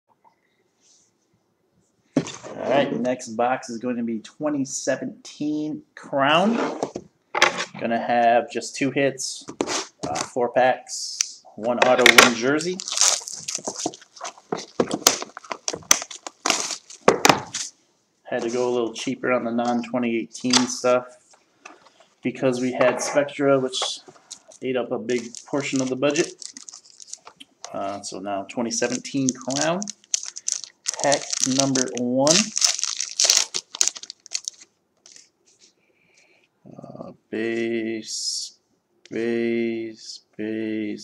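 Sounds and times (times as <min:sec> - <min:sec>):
cardboard box crackling and tearing: 0:12.8 - 0:17.0, 0:30.0 - 0:34.6.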